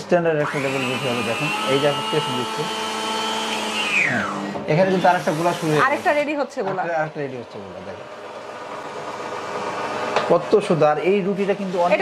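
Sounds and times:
roti-making machine whirring: 0.4 - 12.0.

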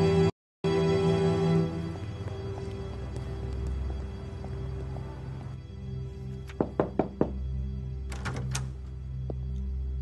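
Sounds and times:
background music: 0.0 - 10.0
knocks on door: 6.5 - 7.5.

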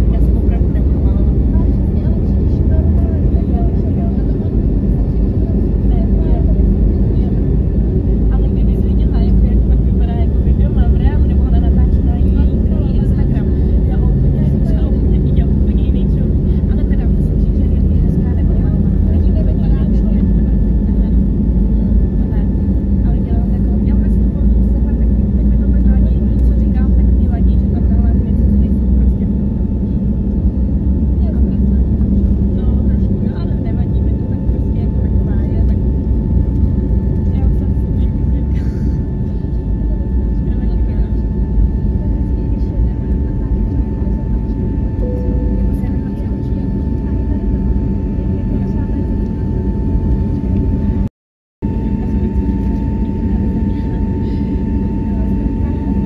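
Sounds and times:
jet engine and runway rumble: 0.0 - 56.0.

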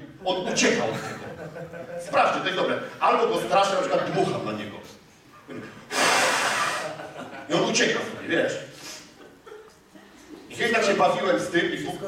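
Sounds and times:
man blowing hard puff of breath: 5.9 - 7.0.

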